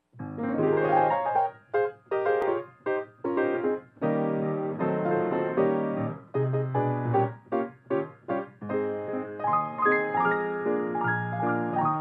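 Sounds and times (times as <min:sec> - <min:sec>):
player piano dance music: 0:00.0 - 0:12.0.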